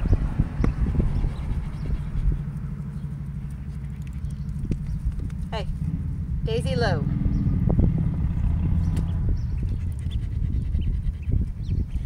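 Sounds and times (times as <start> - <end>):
steady low rumble: 0.0 - 12.0
dog panting: 0.8 - 4.4, 9.5 - 12.0.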